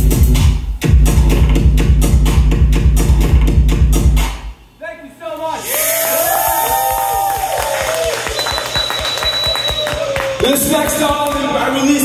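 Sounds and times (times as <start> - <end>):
crowd cheering and whooping: 5.6 - 10.9
thin high whistle-like tone: 8.2 - 10.0.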